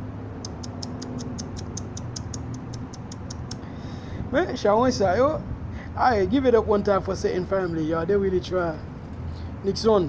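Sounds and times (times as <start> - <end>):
rapid high-pitched ticking: 0.4 - 3.7.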